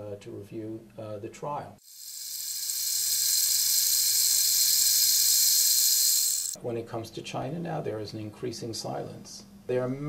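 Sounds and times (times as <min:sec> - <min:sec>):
loud steady hiss: 0:01.8 - 0:06.6.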